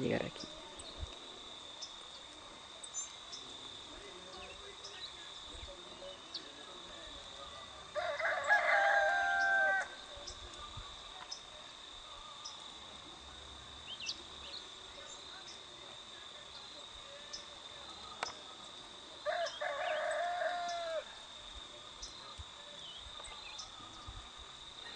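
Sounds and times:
high-pitched insect drone: 0.0s - 24.9s
rooster crowing: 7.8s - 10.2s, 19.2s - 21.3s.

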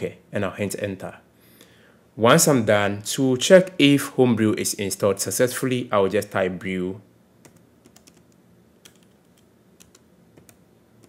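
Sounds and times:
keyboard typing clicks: 7.4s - 10.6s.

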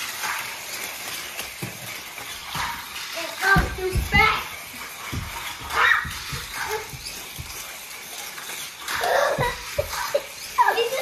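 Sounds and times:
child laughing: 8.9s - 11.0s.

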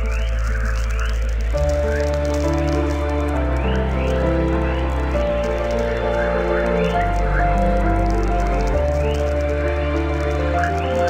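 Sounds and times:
low bass: 0.0s - 11.0s.

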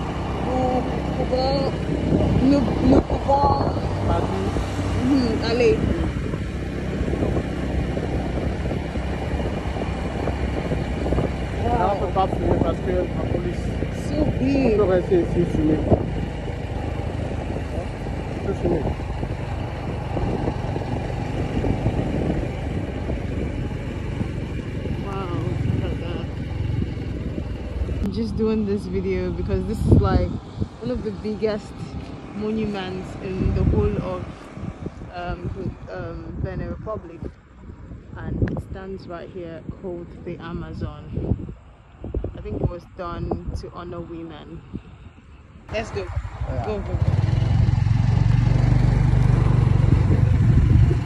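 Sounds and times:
vehicle engine and tyre rumble: 0.0s - 51.0s.

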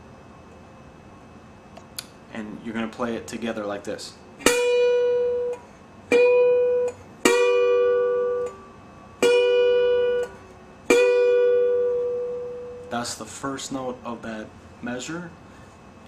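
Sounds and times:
slide guitar notes: 4.4s - 13.1s.

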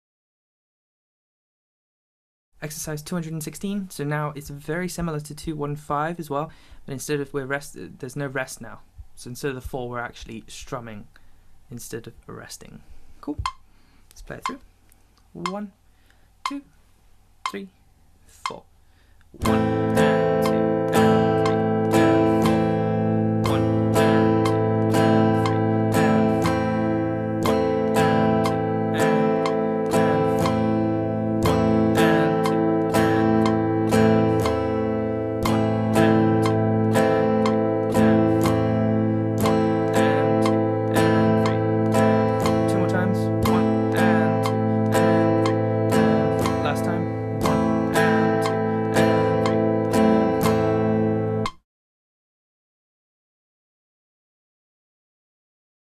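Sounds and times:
guitar strumming a chord: 19.4s - 51.6s.

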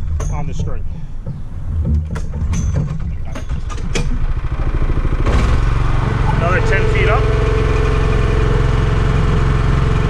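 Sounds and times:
small gasoline engine running: 3.7s - 10.0s.

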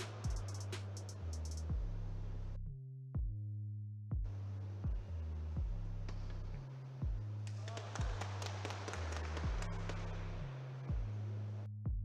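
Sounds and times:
electronic music with kick drum: 0.0s - 1.9s, 10.9s - 11.2s.

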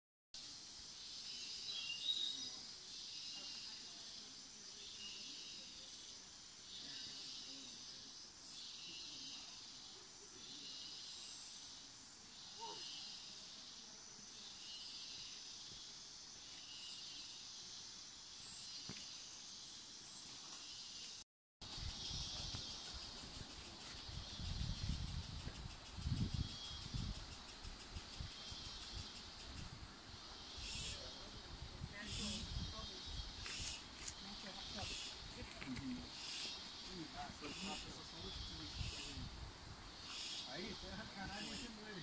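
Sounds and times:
insects chorus: 0.4s - 42.0s
sharp insect call: 0.4s - 42.0s.

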